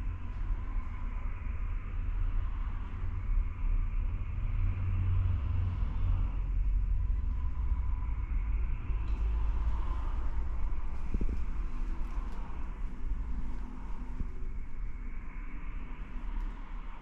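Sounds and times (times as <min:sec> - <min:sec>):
low background rumble: 0:00.0 - 0:17.0.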